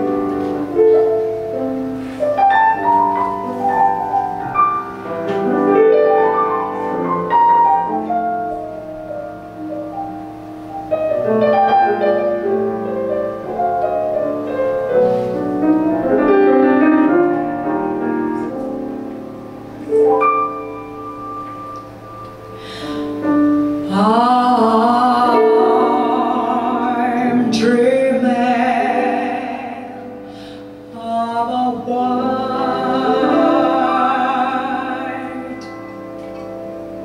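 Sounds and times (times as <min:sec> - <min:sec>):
grand piano ballad: 0:00.0 - 0:37.0.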